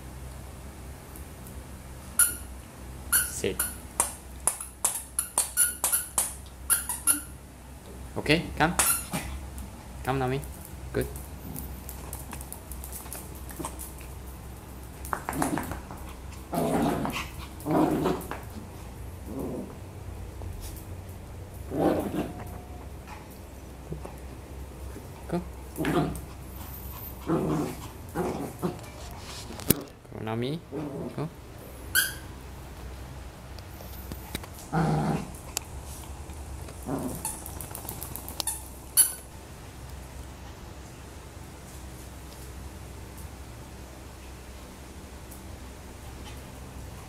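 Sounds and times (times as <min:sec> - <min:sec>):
claws clicking on tile floor: 0:04.0 - 0:06.9, 0:10.5 - 0:16.2, 0:35.3 - 0:39.3
puppy growling: 0:15.1 - 0:20.0, 0:21.6 - 0:30.0, 0:30.6 - 0:32.2, 0:34.5 - 0:38.4.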